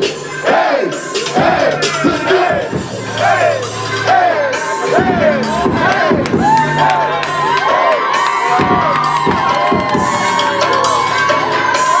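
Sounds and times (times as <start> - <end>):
crowd cheering and shouting: 0.0 - 12.0
music playing: 0.0 - 12.0.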